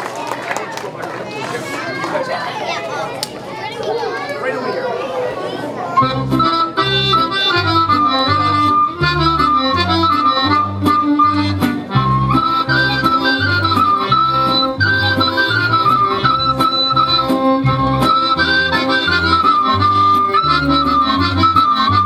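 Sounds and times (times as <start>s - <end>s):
children chattering: 0.0s - 22.0s
accordion folk dance music: 5.9s - 22.0s.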